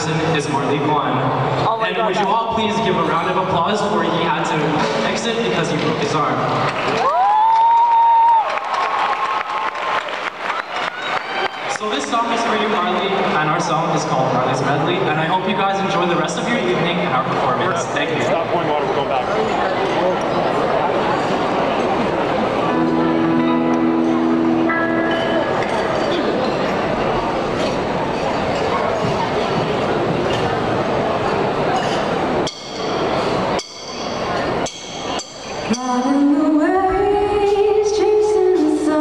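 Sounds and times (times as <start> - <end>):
crowd talking: 0.0 - 39.0
audience applauding: 6.7 - 13.3
band holding a chord: 22.3 - 28.1
dishes and glasses clinking: 24.9 - 30.5, 31.3 - 36.1.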